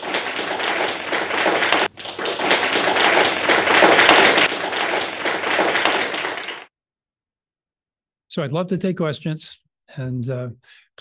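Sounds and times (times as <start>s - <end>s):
audience applauding: 0.0s - 6.7s.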